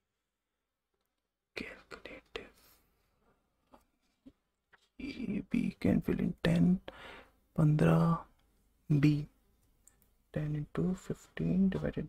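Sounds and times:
man whispering: 1.5s - 2.9s, 5.0s - 9.4s, 10.3s - 12.0s.

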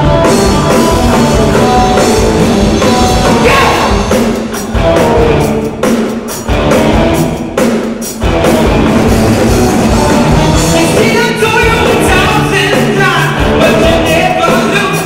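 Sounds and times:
funk rock band playing: 0.0s - 15.0s.

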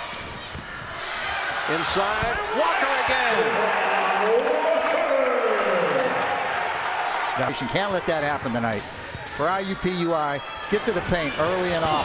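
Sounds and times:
crowd cheering and applauding: 2.6s - 8.1s.

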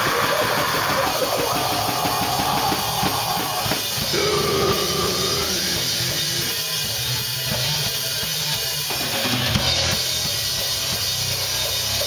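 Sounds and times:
shouted vocals: 0.0s - 6.6s
distorted guitar: 0.0s - 12.0s
rapid drumming on drum kit: 0.0s - 12.0s.

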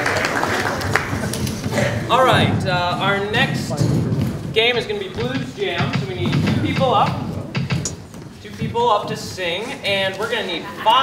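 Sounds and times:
young man talking: 2.0s - 7.3s, 8.4s - 11.0s.

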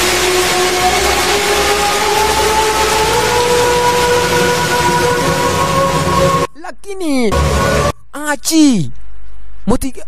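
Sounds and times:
loud rushing noise: 0.0s - 6.5s, 7.3s - 7.9s
rising held musical tones: 0.0s - 6.5s, 7.3s - 8.0s.

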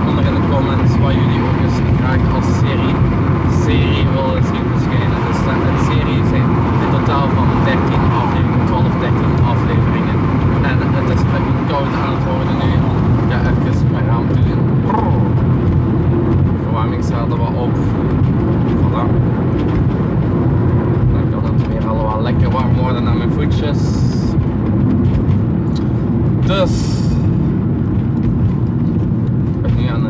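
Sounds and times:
van engine and road noise: 0.0s - 30.0s.

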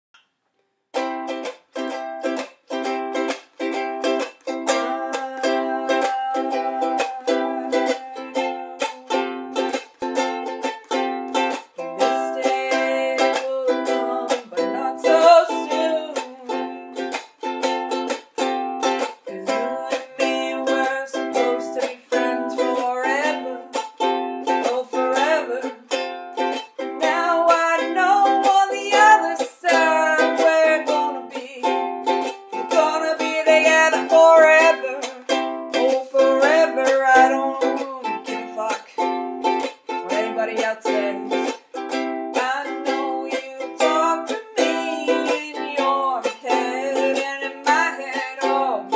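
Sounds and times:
ukulele strumming: 0.9s - 48.9s
person singing: 1.0s - 48.9s.

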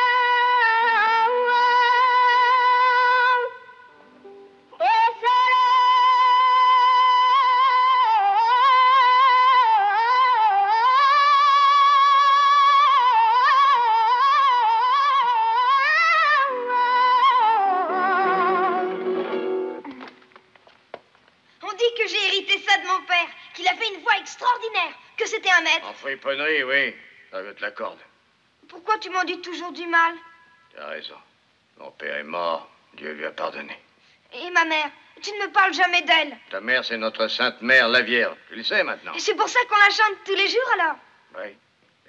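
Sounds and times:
child singing with vibrato: 0.0s - 3.9s, 4.8s - 19.1s
sustained instrumental accompaniment: 17.6s - 20.3s.

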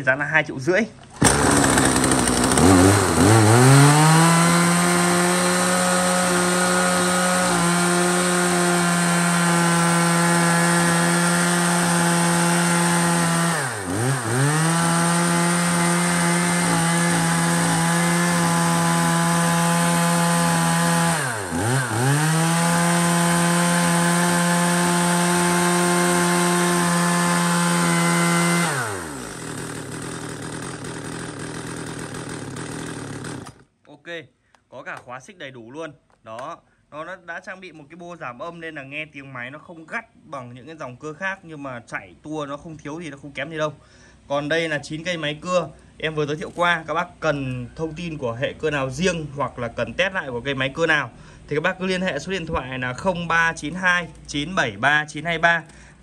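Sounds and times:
chainsaw revving: 1.2s - 33.7s.

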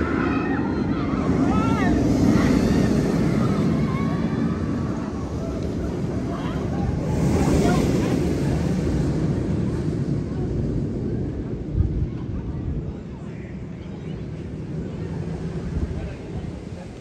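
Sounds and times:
roller coaster train rumbling: 0.0s - 17.0s.

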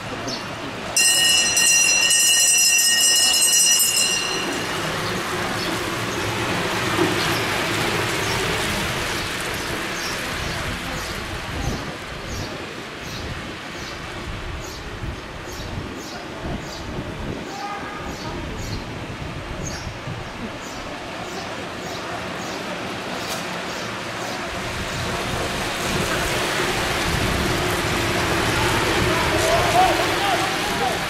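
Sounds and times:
bicycles rushing past: 0.1s - 15.8s, 21.1s - 31.0s
bell ringing loudly: 1.0s - 5.7s.

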